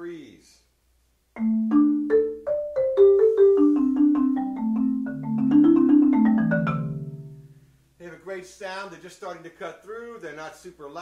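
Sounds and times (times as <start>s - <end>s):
marimba notes and chords: 1.4s - 7.8s.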